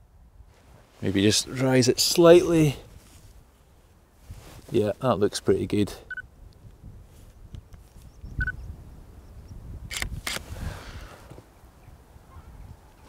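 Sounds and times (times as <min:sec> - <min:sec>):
wind rumble on microphone: 0:06.2 - 0:13.0
camera electronic beeps: 0:08.4 - 0:08.6
camera shutter clicks: 0:09.9 - 0:10.4.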